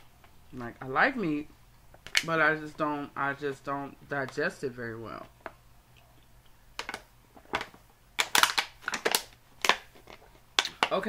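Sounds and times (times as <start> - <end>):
plastic bottle crinkling: 6.7 - 11.0.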